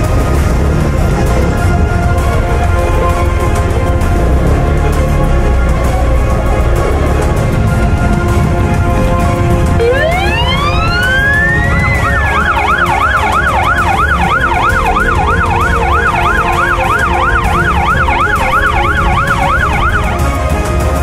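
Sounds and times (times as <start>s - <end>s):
background music: 0.0s - 21.0s
electronic siren wailing and yelping: 9.8s - 20.3s.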